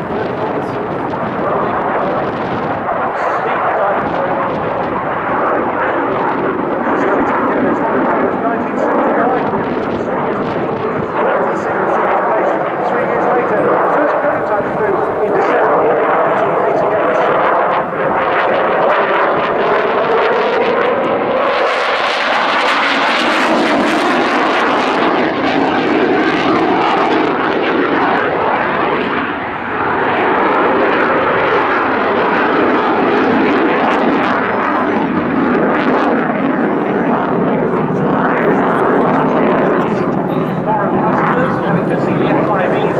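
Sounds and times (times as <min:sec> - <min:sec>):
jet engine roaring overhead: 0:00.0 - 0:42.9.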